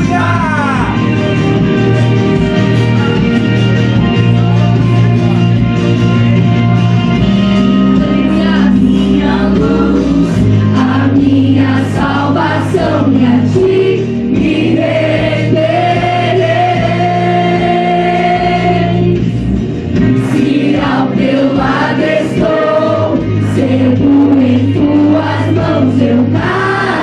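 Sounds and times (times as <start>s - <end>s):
instrumental accompaniment: 0.0s - 27.0s
young voices singing gospel: 8.0s - 19.4s, 20.2s - 27.0s.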